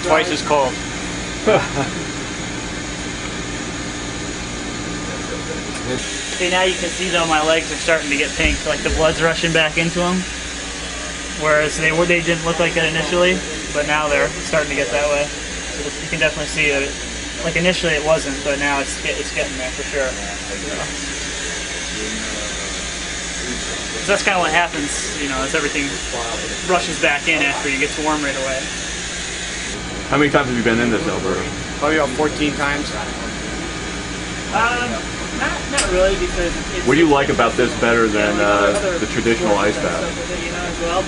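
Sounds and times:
low hum: 0.0 - 16.0, 35.1 - 41.0
faint voices: 4.4 - 41.0
hiss of gas flowing: 6.0 - 14.0.

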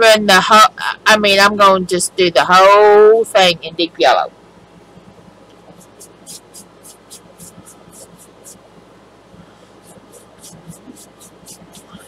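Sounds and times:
paintbrush stroking on paper: 5.7 - 8.6, 9.8 - 12.0.

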